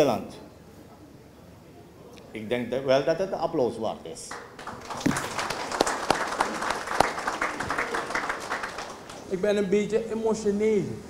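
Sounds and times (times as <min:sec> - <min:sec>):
audience applauding: 0:04.3 - 0:09.6.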